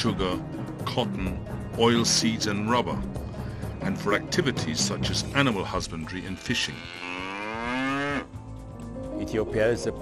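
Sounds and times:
cow mooing: 6.4 - 8.4.

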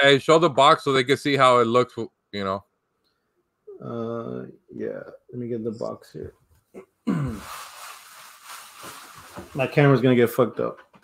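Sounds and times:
man sighing: 6.8 - 7.7
rustling and handling noise: 7.3 - 11.0.

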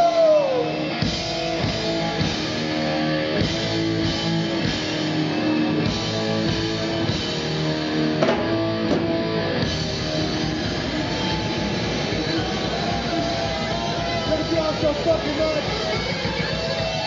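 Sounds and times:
metal band playing live: 0.0 - 17.0
sharp drum hits: 8.2 - 9.2.

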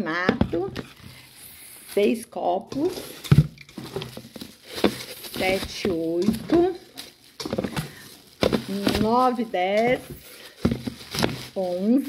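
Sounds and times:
plastic bags crinkling: 0.1 - 12.0.

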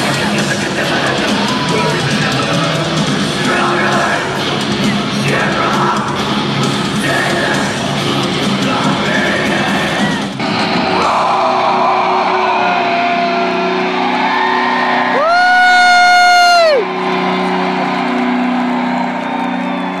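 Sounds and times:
crowd noise: 0.0 - 20.0
live heavy metal band: 0.0 - 20.0
loud yell: 0.9 - 2.3, 9.2 - 10.4, 11.0 - 20.0.

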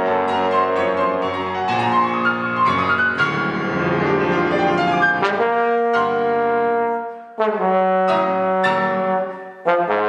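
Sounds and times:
trombone playing: 0.0 - 2.2, 4.5 - 10.0
grand piano playing: 0.0 - 10.0.

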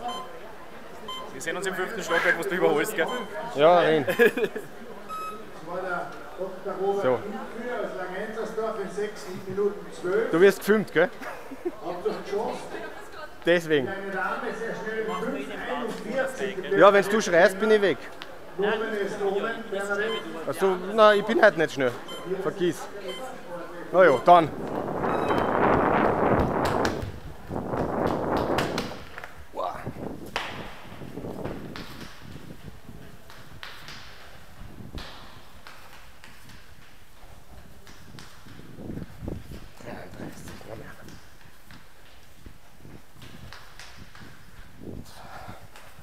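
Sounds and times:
short high electronic beep: 0.0 - 0.3, 5.1 - 5.4, 15.1 - 15.4
people talking: 0.0 - 25.4
running footsteps on stone floor: 30.2 - 46.0.

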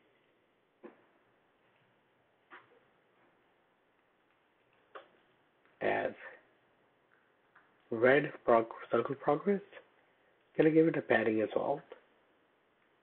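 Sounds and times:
low room hiss: 0.0 - 13.0.

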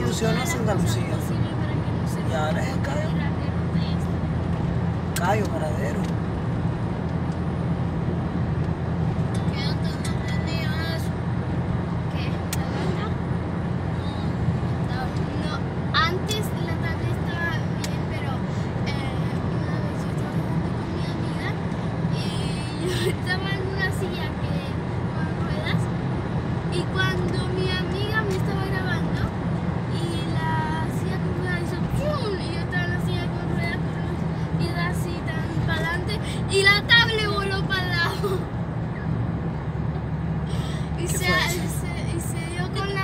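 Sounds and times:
car road and engine rumble: 0.0 - 43.0
person speaking: 40.9 - 43.0.

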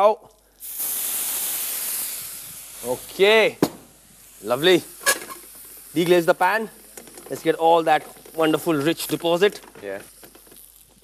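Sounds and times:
water hissing in hot pan: 0.5 - 11.0.

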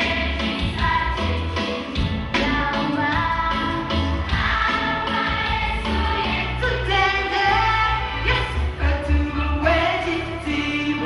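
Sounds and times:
choir singing: 0.0 - 8.5
backing music with bass and beat: 0.0 - 11.0.

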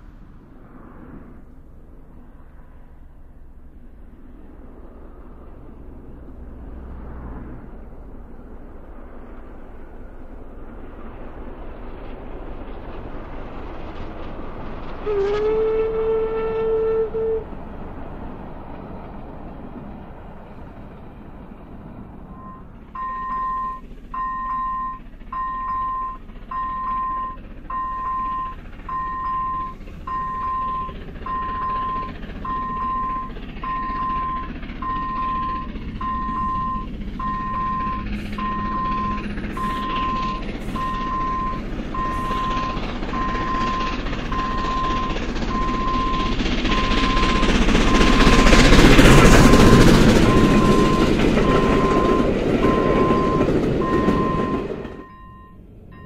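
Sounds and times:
steam train running: 8.2 - 56.0
steam whistle: 15.0 - 17.5
level crossing warning beeps: 22.3 - 56.0.

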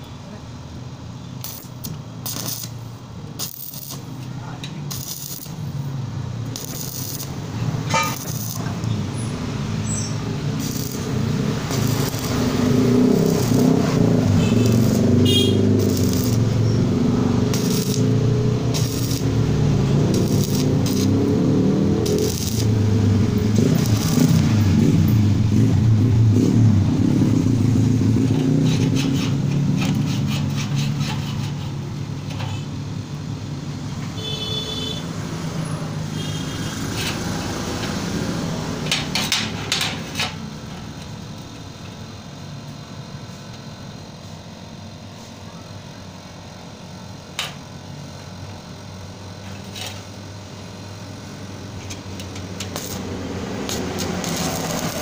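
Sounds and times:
steady low hum: 0.0 - 34.0
welding arc crackling: 1.4 - 32.3, 49.0 - 55.0.

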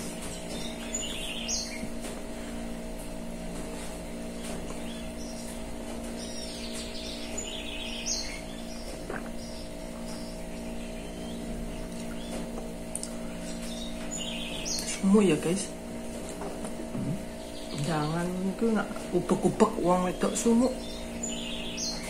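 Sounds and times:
small birds chirping: 0.0 - 2.6, 4.3 - 15.8, 16.8 - 22.0
steady low hum: 0.0 - 22.0.

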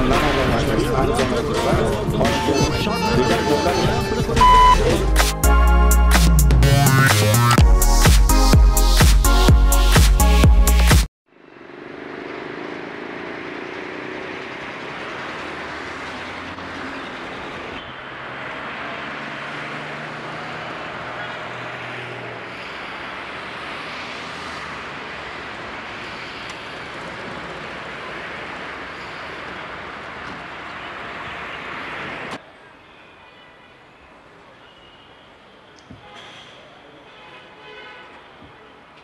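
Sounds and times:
passing traffic: 0.0 - 39.0.

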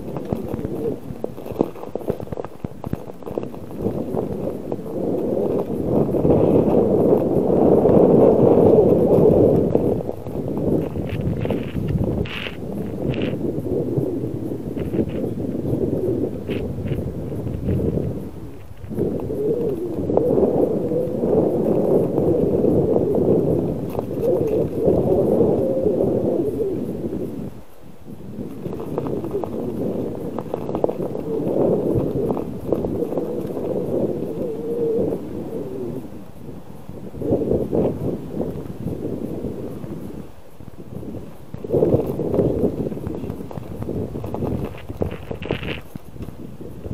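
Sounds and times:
bicycle tyres rolling on ice: 0.0 - 46.9.

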